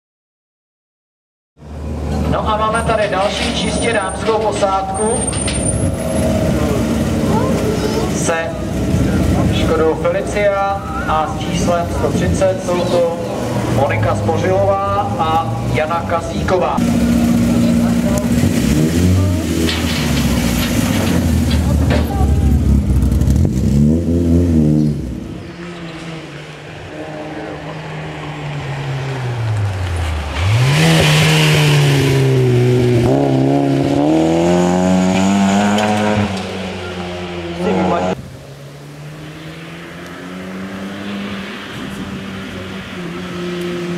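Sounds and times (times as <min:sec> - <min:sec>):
rally car engine revving: 0:01.6 - 0:43.9
rally car engine idling: 0:05.8 - 0:23.7.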